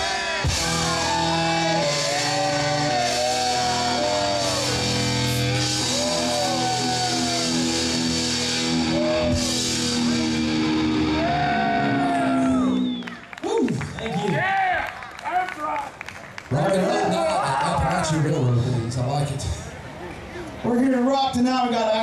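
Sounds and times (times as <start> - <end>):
live rock band playing: 0.0 - 12.8.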